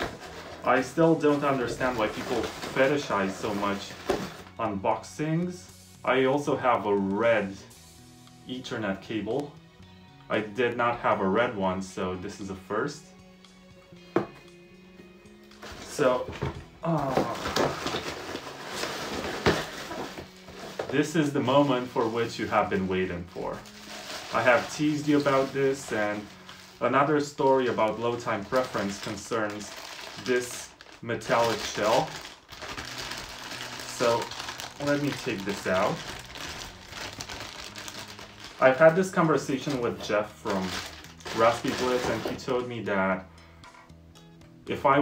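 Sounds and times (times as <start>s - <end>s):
plastic bag crinkling: 0.0s - 4.5s, 16.8s - 42.6s
quiet background music: 0.0s - 45.0s.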